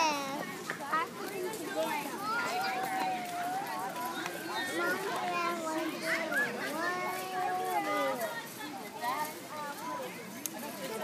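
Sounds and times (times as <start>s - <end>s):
people and children talking: 0.0s - 11.0s.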